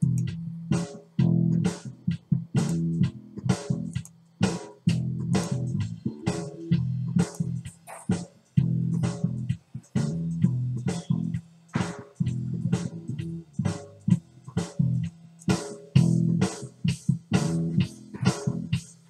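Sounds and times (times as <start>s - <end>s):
bass guitar riff: 0.0s - 11.4s, 12.0s - 15.1s, 16.0s - 18.8s
drum kit beat: 0.0s - 19.0s.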